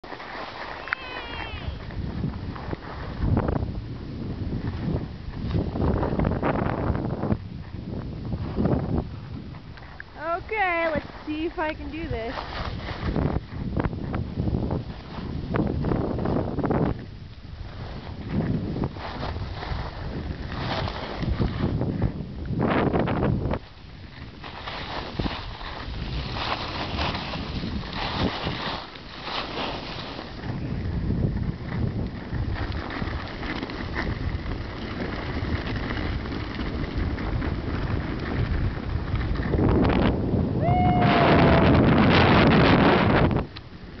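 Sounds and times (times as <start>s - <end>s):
skis scraping on packed snow: 0.0s - 40.5s
wind buffeting microphone: 0.0s - 44.0s.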